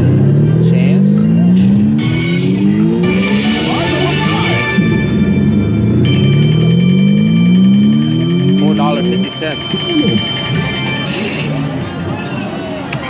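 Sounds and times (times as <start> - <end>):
slot machine rising tones: 1.8 - 12.1.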